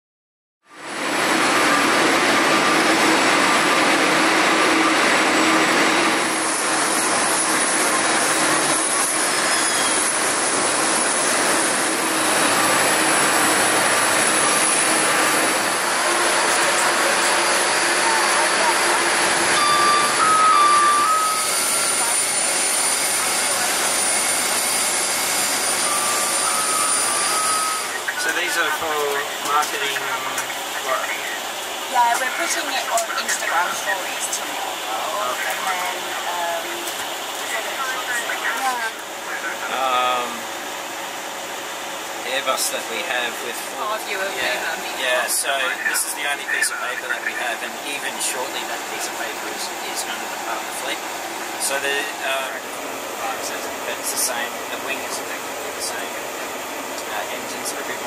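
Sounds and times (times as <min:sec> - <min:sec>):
aircraft and ground equipment rushing: 0:00.7 - 0:58.0
high whine: 0:00.9 - 0:42.9
voices: 0:14.3 - 0:24.0, 0:25.9 - 0:40.6, 0:42.2 - 0:51.0, 0:51.6 - 0:58.0
short two-tone beeps: 0:19.6 - 0:21.6, 0:25.8 - 0:28.0.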